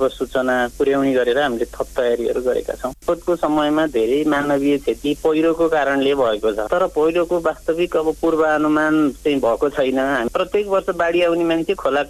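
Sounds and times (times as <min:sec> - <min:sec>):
person speaking in news report: 0:00.0 - 0:12.0.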